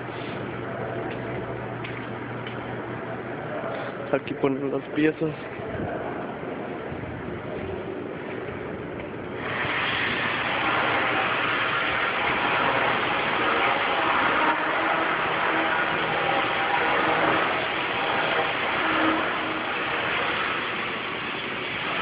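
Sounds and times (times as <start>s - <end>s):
machine running steadily: 0.0s - 22.0s.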